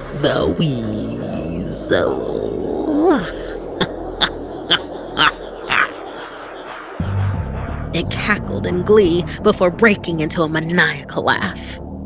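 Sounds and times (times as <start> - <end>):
eerie background drone: 0.0 - 12.0
creature's high-pitched cries: 3.0 - 6.0.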